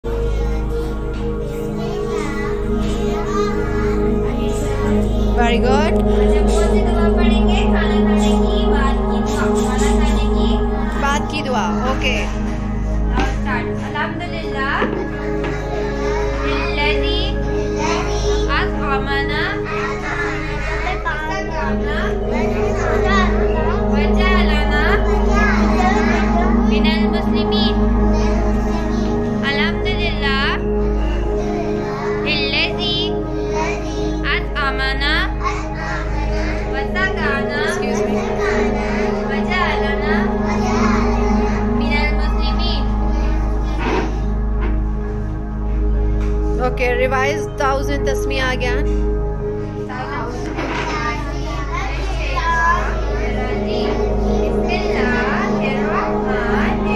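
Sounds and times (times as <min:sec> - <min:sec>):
background music: 0:00.0 - 0:56.9
children talking: 0:00.0 - 0:56.9
low drone: 0:00.0 - 0:56.9
high voice singing: 0:00.5 - 0:13.8.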